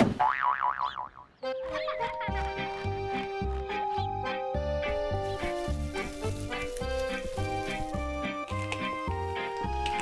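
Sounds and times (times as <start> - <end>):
cartoon boing: 0.2 - 1.2.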